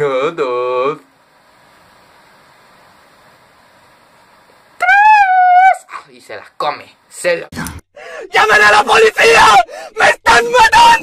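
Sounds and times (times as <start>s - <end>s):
boy yelling high-pitched: 4.8s - 6.1s, 8.3s - 11.0s.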